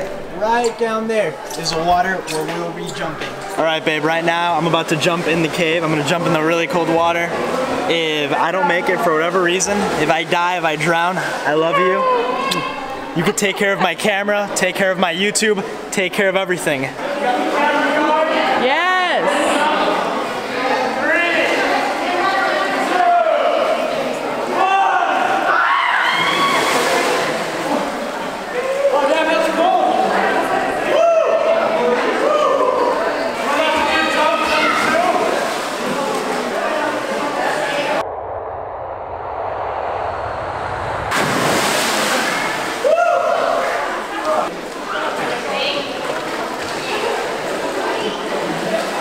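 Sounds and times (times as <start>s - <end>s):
water churning: 0.0s - 14.0s, 25.2s - 29.4s, 33.2s - 38.1s, 40.8s - 49.0s
group of people talking: 0.0s - 49.0s
long drawn-out shout: 24.6s - 26.8s, 30.9s - 33.0s, 42.8s - 43.8s
loud splash into water: 25.2s - 28.5s, 39.2s - 44.6s
short rising shout: 38.0s - 44.0s.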